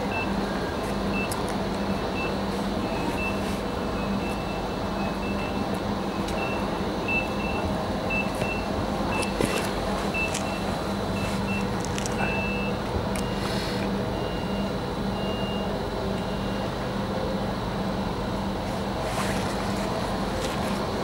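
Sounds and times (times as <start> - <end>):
electric train low hum: 0.0 - 21.0.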